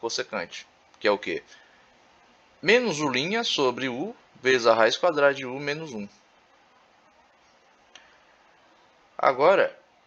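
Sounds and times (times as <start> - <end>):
faint click: 7.8 - 8.2.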